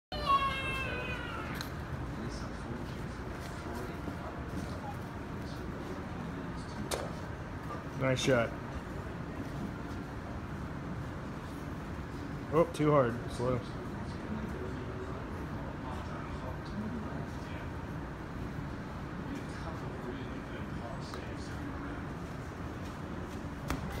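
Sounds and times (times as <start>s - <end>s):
child squealing: 0.1s - 1.6s
store background noise: 0.1s - 24.0s.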